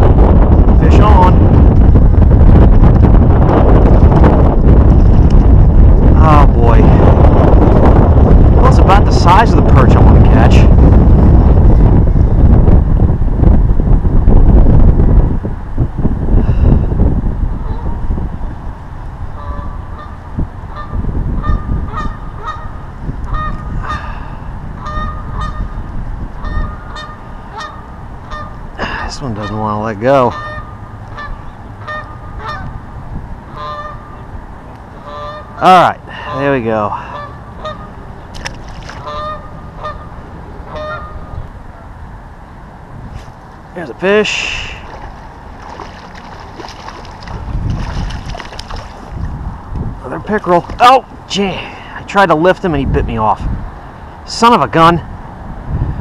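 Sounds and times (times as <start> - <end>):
wind buffeting microphone: 0.0 - 56.0
waterfowl honking: 19.4 - 24.1, 24.8 - 25.8, 26.4 - 28.6, 29.4 - 32.8, 33.5 - 34.3, 35.0 - 35.7, 37.0 - 38.0, 38.9 - 41.9.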